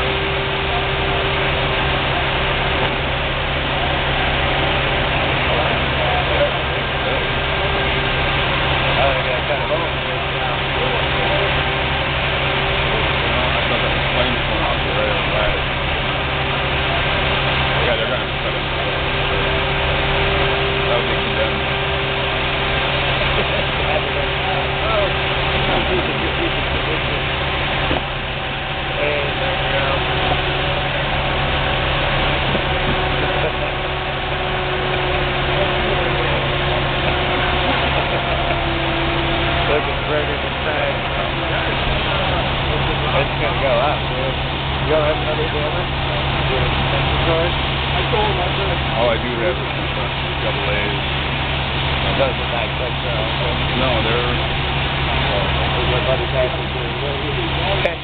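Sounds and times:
diesel engines idling: 0:00.0 - 0:58.0
faint distant voices: 0:32.2 - 0:51.0.

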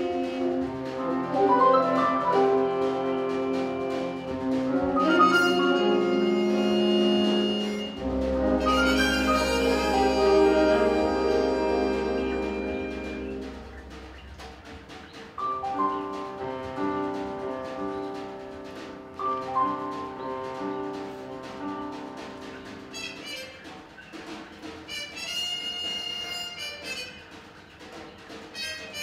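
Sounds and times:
jazz big band playing: 0:00.0 - 0:29.0.

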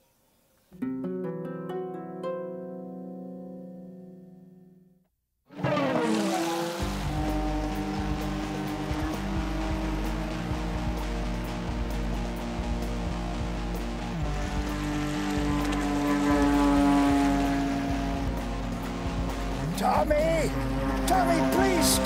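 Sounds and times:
small boat motor running: 0:06.7 - 0:19.7.

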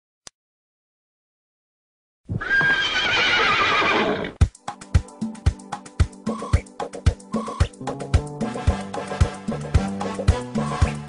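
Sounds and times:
horse whinnying: 0:02.3 - 0:04.4.

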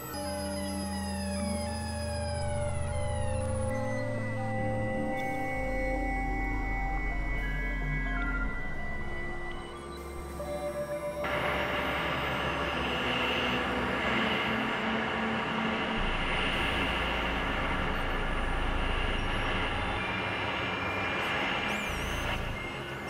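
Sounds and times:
electronic drone and noise music: 0:00.0 - 0:23.0.

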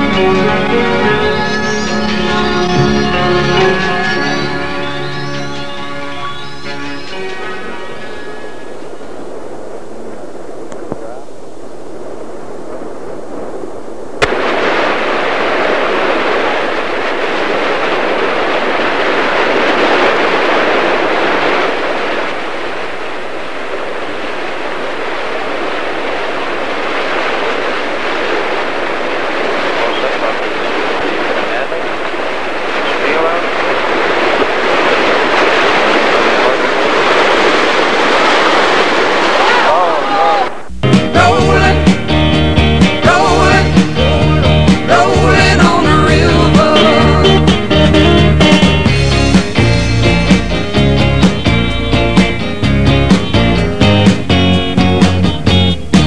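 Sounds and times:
rapids rushing: 0:00.0 - 0:13.0, 0:14.2 - 0:56.0.

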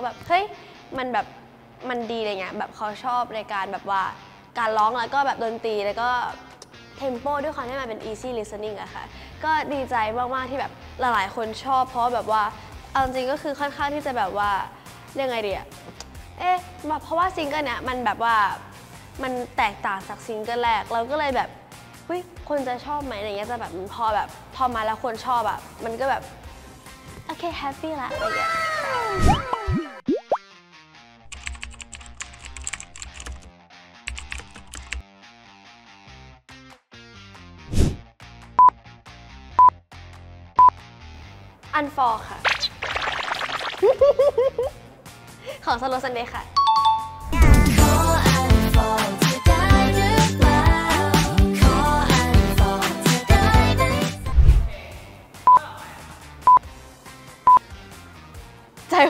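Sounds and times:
quiet background music: 0:00.0 - 0:30.2, 0:41.6 - 0:43.0
upbeat electronic jingle: 0:42.4 - 0:43.9.

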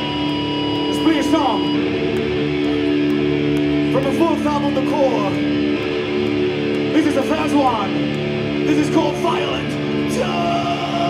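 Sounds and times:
distorted electric guitar chord ringing: 0:00.0 - 0:11.0.

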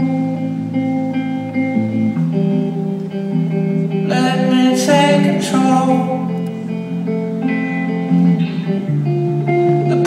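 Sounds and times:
electric guitar playing: 0:00.0 - 0:10.0.

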